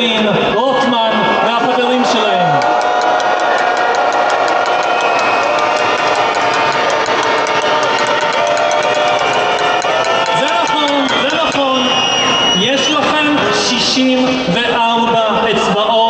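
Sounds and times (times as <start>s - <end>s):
crowd cheering: 0.0s - 16.0s
fast rhythmic beat: 2.5s - 16.0s.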